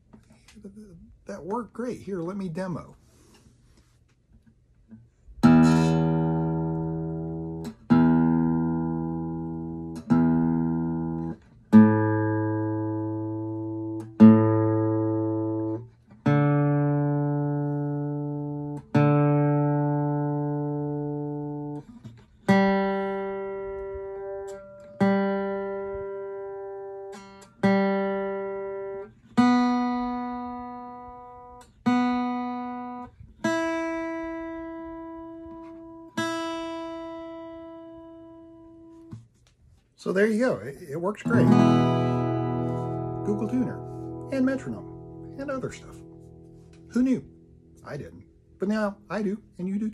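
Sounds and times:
acoustic guitar strings plucked: 0.0s - 39.8s, 41.2s - 49.9s.

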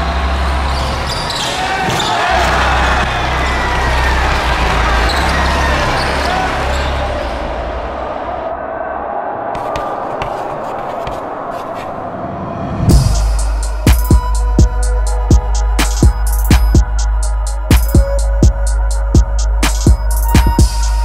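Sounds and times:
music with deep bass: 12.9s - 21.0s.

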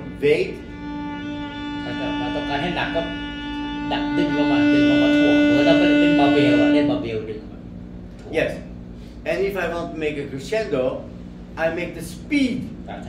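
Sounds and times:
violin playing long bowed note: 0.0s - 7.5s.

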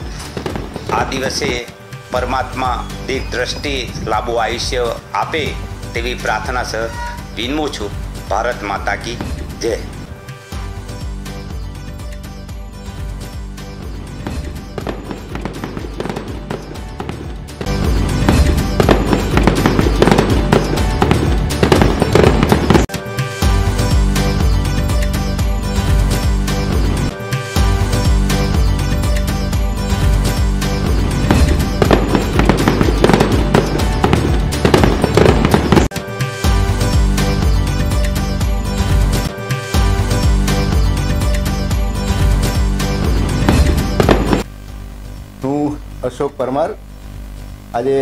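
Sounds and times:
firework crackles and bangs: 0.0s - 1.7s, 14.2s - 22.9s, 30.9s - 35.9s, 43.3s - 44.5s
festive music: 9.2s - 44.5s
firework pops and crackles: 14.8s - 16.8s, 31.3s - 35.9s.

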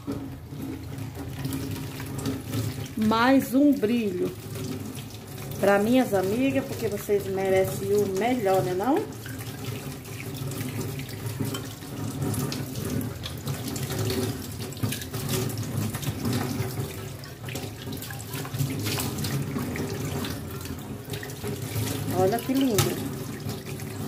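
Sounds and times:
tap water splashing on metal pot: 0.0s - 24.0s.

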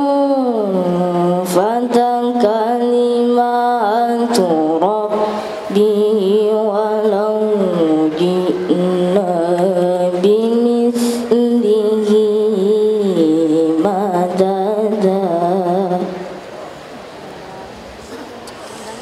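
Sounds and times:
boy reciting melodically: 0.0s - 16.4s.

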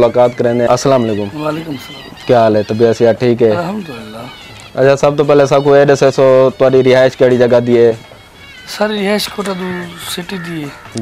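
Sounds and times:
higher-pitched voice: 1.0s - 2.3s, 3.5s - 4.4s.

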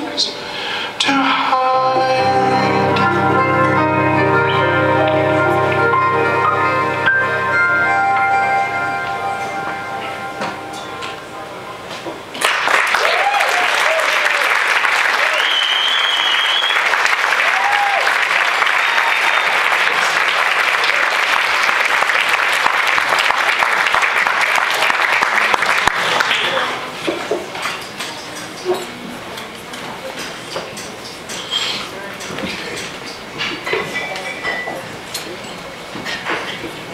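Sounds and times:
audience applauding and cheering: 12.3s - 27.0s
whoops: 12.9s - 19.6s
high whistle: 15.2s - 17.0s.

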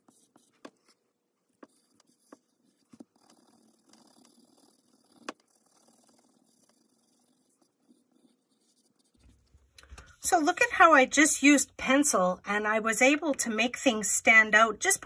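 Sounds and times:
pencil scratching on paper: 0.0s - 12.3s
pencil tapping: 1.5s - 5.6s.

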